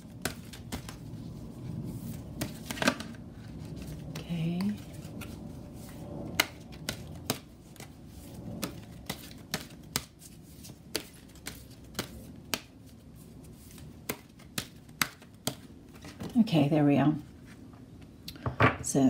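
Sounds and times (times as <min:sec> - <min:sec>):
cards being shuffled by hand: 0:00.0 - 0:16.4.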